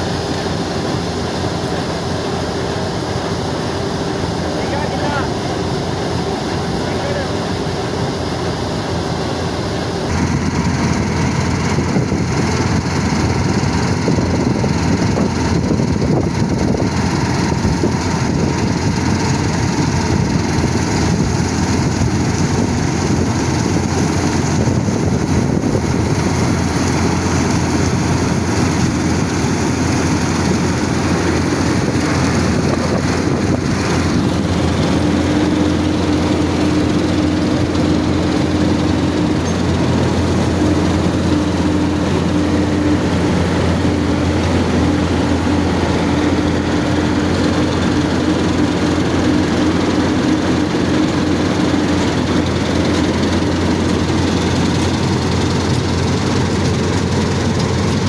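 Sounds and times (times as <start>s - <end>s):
combine harvester running: 0.0s - 58.0s.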